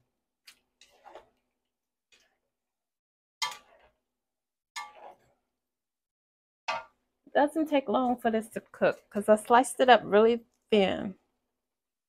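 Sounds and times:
spatulas clacking against a wok: 3.4 - 3.9, 4.8 - 5.2.

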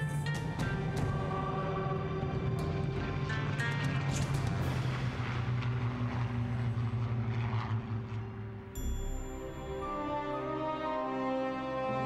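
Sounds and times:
propeller aircraft engine: 0.0 - 10.5
background music: 0.0 - 12.0.

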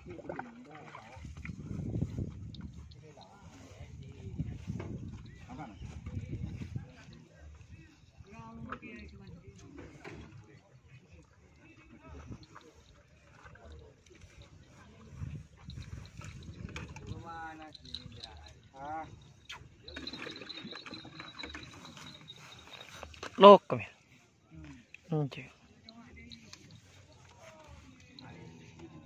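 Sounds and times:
faint background talk: 0.0 - 29.0.

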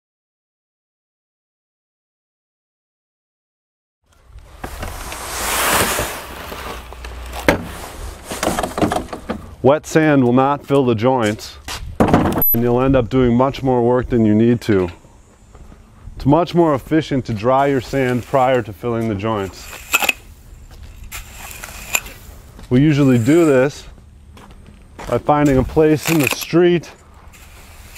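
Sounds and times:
metal rake scraping sand on concrete: 4.9 - 6.9, 17.6 - 20.4, 21.0 - 23.8, 25.4 - 27.9
sand pouring onto concrete: 5.1 - 6.9, 21.1 - 22.3, 27.4 - 27.9
low rumble: 12.4 - 15.1
rake head clacking on concrete: 19.6 - 20.2, 21.0 - 22.2, 25.5 - 26.8.

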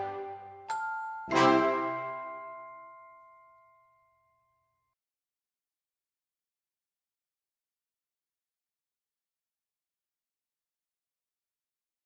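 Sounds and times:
bell-like chime ringing: 0.0 - 4.9.

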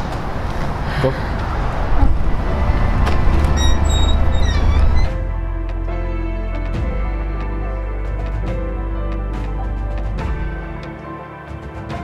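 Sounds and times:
cars in background: 0.0 - 6.0
low rumble: 0.0 - 8.7.

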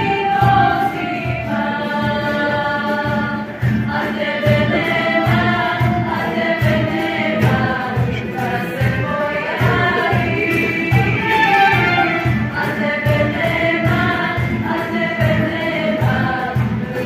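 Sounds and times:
cajon beat: 0.0 - 17.0
women singing in harmony: 0.0 - 17.0.

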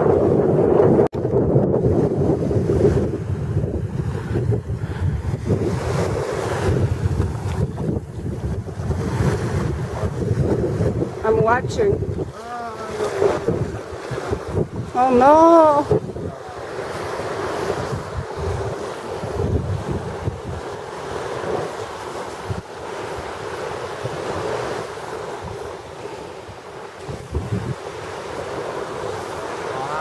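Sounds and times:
surf washing onto beach: 0.0 - 30.0
wind buffeting microphone: 0.0 - 30.0.

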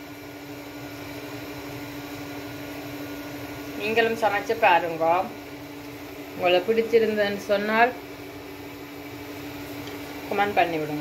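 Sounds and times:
appliance mechanical hum: 0.0 - 11.0.

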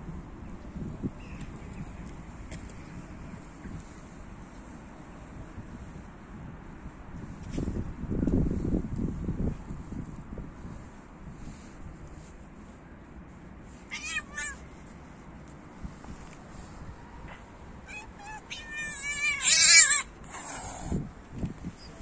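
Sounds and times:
cat meowing: 13.9 - 14.6, 17.8 - 20.8.

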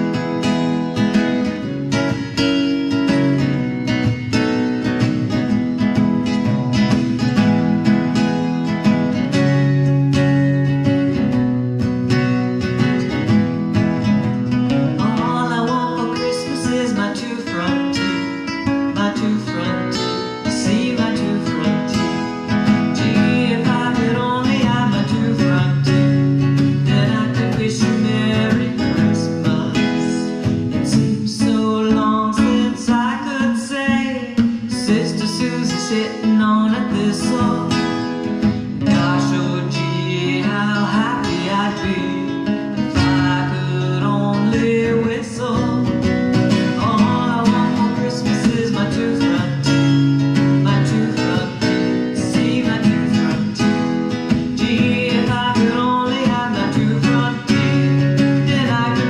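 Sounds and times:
acoustic guitar strumming: 0.0 - 59.0
person singing: 14.5 - 59.0.

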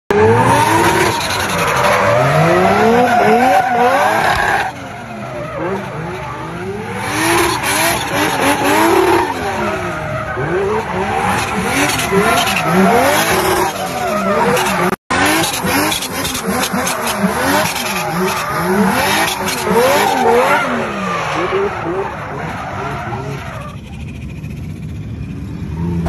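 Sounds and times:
car engine revving: 0.1 - 26.0.

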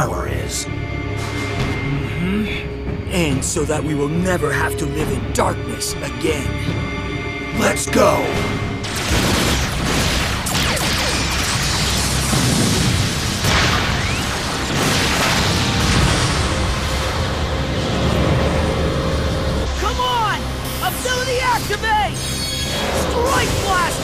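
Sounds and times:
explosions: 8.8 - 18.5
cartoon energy blasts: 8.9 - 16.5
continuous loud rumble: 14.6 - 20.7.

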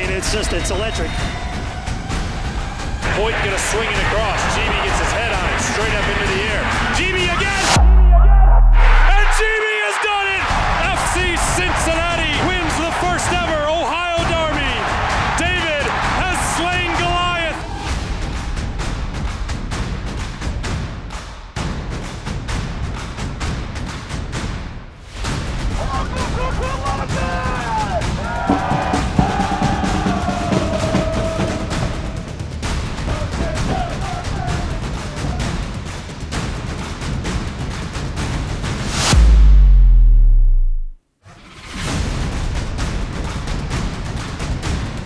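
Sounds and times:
music: 0.0 - 45.0
deep bass boom: 7.6 - 9.4, 39.1 - 41.0
football crowd singing and chanting: 27.1 - 32.4, 33.0 - 35.5
drum hits: 28.1 - 34.0.

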